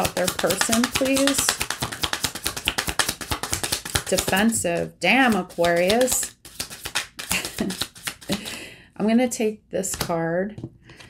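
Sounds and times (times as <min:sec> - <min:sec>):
cards being shuffled: 0:00.0 - 0:08.5.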